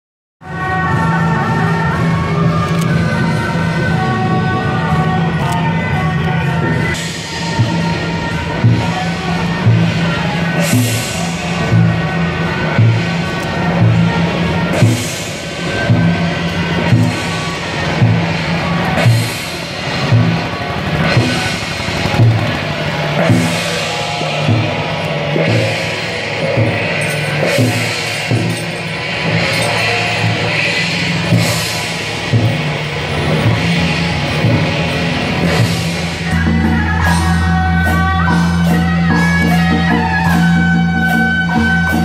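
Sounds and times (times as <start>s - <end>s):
drum beating: 0.6s - 42.0s
cymbal crash: 7.0s - 37.5s.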